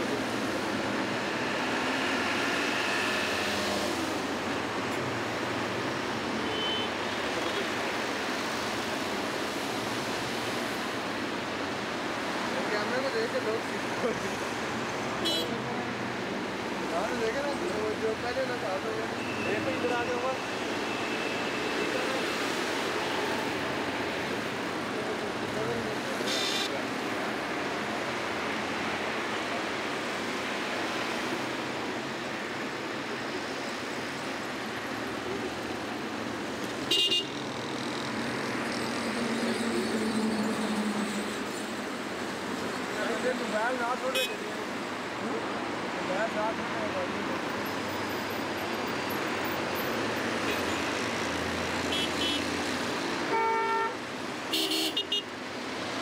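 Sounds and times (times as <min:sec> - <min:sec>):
car and motorcycle engines: 0:00.0 - 0:53.4
road traffic: 0:00.0 - 0:56.0
vehicle horns tooting: 0:06.4 - 0:07.0, 0:15.2 - 0:15.6, 0:36.9 - 0:37.3, 0:51.9 - 0:52.4, 0:53.3 - 0:55.3.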